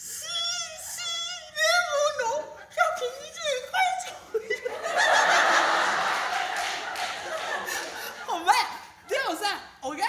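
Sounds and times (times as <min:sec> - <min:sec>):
audience laughing: 0:04.4 - 0:09.3.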